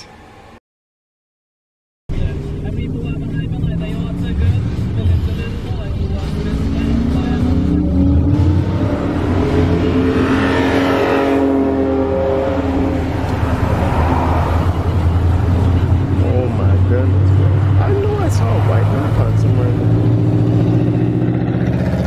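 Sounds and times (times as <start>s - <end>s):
low drone of car engines: 2.1s - 22.0s
car engine revving past: 3.6s - 22.0s.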